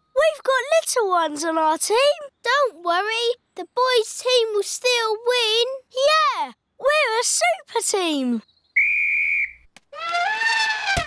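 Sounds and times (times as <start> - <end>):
referee's whistle blast: 8.8 - 9.6.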